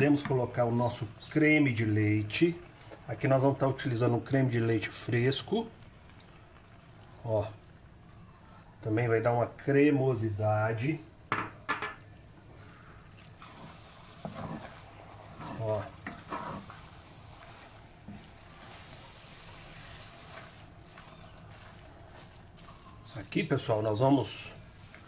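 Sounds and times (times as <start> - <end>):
wet scraping and squelching: 13.0 - 25.0.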